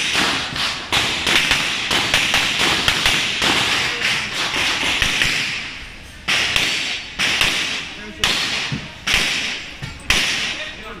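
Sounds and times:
gunshots echoing: 0:00.0 - 0:10.8.

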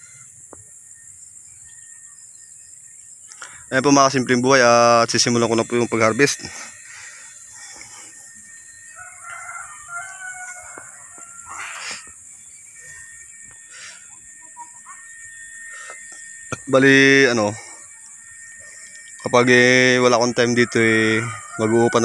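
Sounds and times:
high-pitched insect drone: 0:00.0 - 0:22.0
distant rooster crowing: 0:05.6 - 0:22.0.

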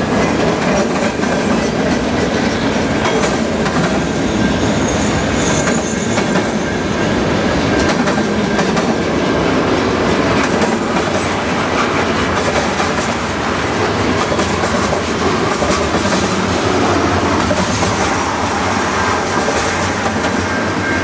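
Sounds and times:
steel wheels clattering on rails: 0:00.0 - 0:21.0
high-pitched squeal: 0:15.2 - 0:21.0.

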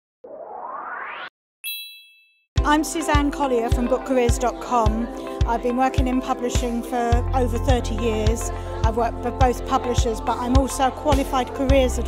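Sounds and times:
bright chime ringing: 0:01.6 - 0:02.5.

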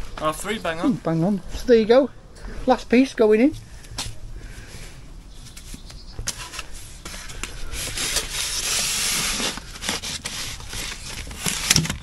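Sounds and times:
insulation board scraping: 0:05.4 - 0:12.0.

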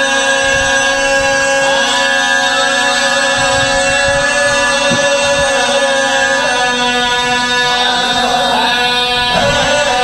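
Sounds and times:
man chanting long note: 0:00.0 - 0:10.0.

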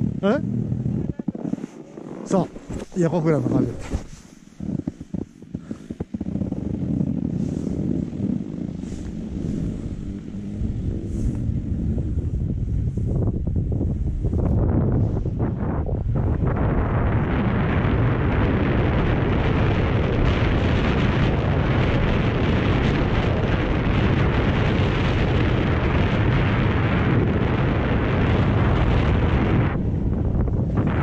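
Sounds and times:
wind buffeting microphone: 0:00.0 - 0:31.0
skis sliding on snow: 0:01.3 - 0:11.5.

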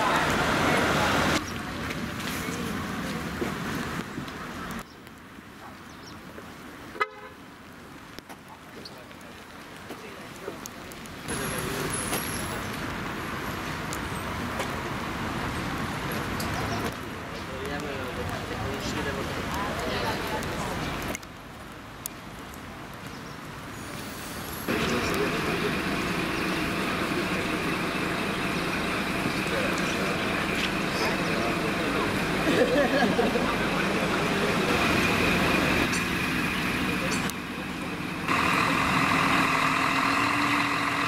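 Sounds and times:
motor vehicle rushing: 0:23.8 - 0:41.0
bus engine idling: 0:24.1 - 0:41.0
indistinct voices: 0:24.7 - 0:41.0.

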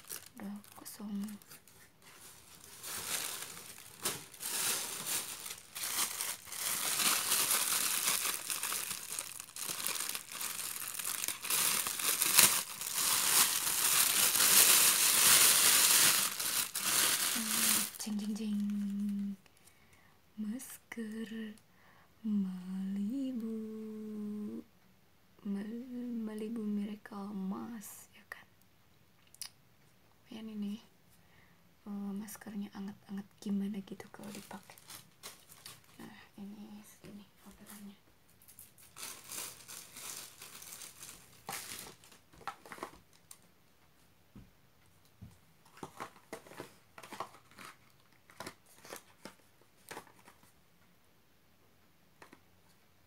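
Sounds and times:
plastic bag crinkling: 0:00.0 - 0:19.3, 0:34.1 - 0:36.0, 0:38.4 - 0:43.4, 0:45.7 - 0:50.5
woman humming: 0:17.4 - 0:19.4, 0:22.3 - 0:24.6.

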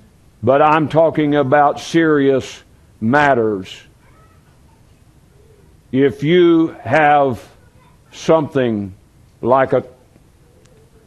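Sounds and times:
man preaching: 0:00.4 - 0:03.9, 0:05.9 - 0:07.5, 0:08.1 - 0:10.0.

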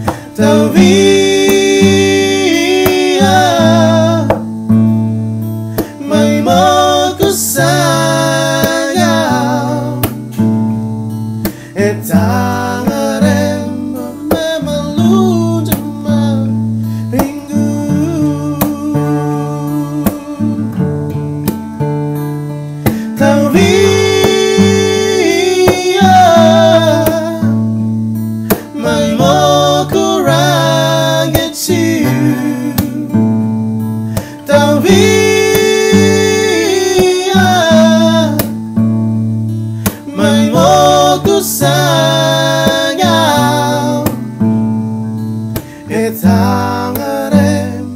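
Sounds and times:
men singing: 0:00.0 - 0:04.6, 0:05.8 - 0:10.4, 0:11.5 - 0:20.8, 0:22.9 - 0:27.7, 0:28.5 - 0:33.5, 0:34.1 - 0:38.8, 0:39.8 - 0:44.4, 0:45.6 - 0:47.9
acoustic guitars: 0:00.0 - 0:47.9.

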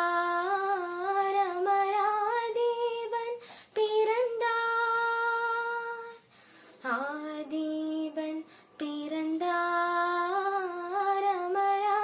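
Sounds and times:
girl singing unaccompanied: 0:00.0 - 0:12.0
short breath: 0:03.4 - 0:03.8, 0:06.2 - 0:06.8, 0:08.4 - 0:08.8.

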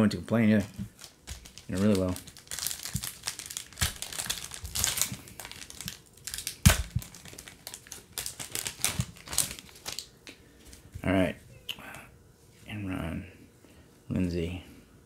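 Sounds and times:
foil wrapper crinkling and tearing: 0:00.5 - 0:10.1.

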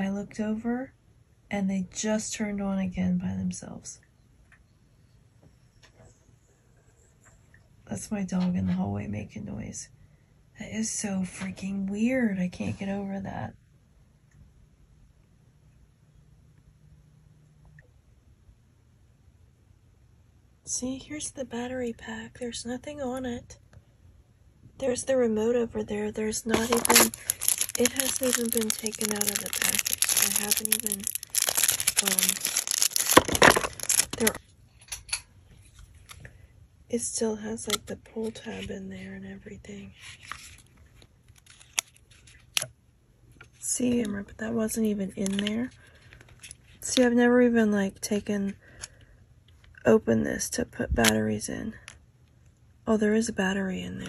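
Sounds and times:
faint low hum: 0:00.0 - 0:54.0.

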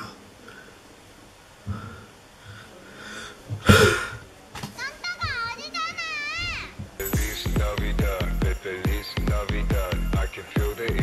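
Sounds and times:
girl exclaiming: 0:04.8 - 0:06.8.

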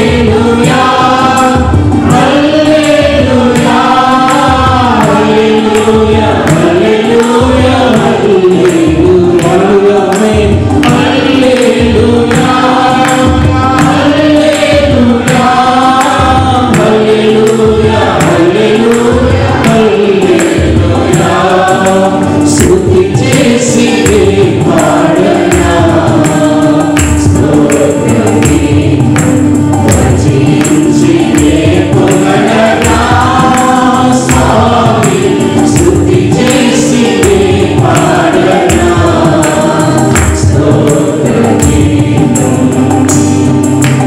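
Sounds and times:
choir singing worship song: 0:00.0 - 0:44.0
instrumental accompaniment: 0:00.0 - 0:44.0
steady percussion beat: 0:00.0 - 0:44.0.

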